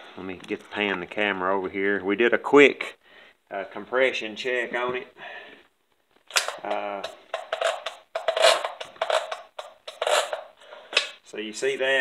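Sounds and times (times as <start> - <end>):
clicking and scraping: 6.2 - 11.2.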